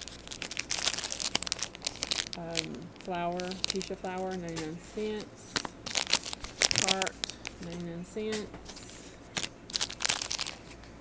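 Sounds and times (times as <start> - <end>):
plastic packaging crinkling: 0.0 - 11.0.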